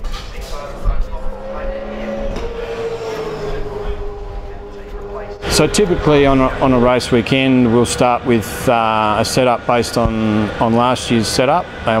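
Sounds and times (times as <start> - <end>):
racing engine running: 0.0 - 8.2
voices: 0.0 - 10.1.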